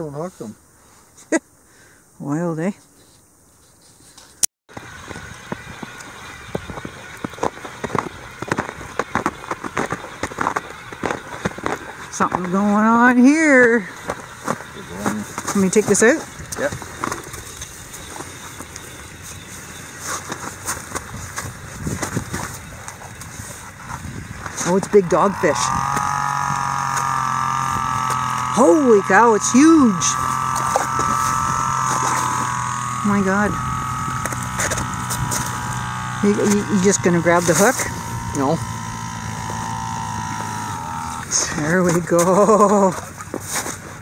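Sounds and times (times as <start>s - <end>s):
steady outdoor noise: 0.0s - 44.0s
crunches and rustles: 2.8s - 25.0s, 39.0s - 44.0s
motor whining and humming: 4.7s - 43.4s.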